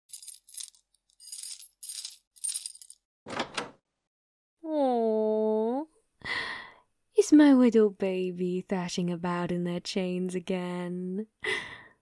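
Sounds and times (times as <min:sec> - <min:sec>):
metal chains rattling: 0:00.1 - 0:03.0.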